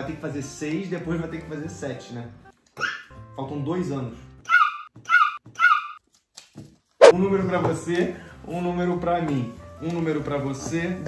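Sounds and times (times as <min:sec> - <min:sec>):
small dog yapping: 0:04.4 - 0:06.0.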